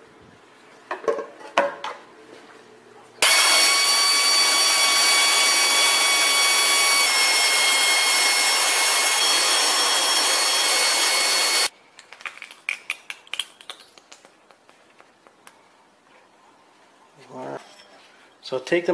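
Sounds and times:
power tool hissing and whining: 0:03.2 - 0:11.7.

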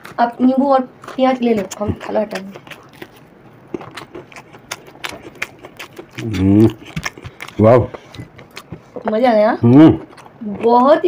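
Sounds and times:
crisp chewing crunches: 0:00.0 - 0:11.0
mouth clicks: 0:03.8 - 0:10.4.

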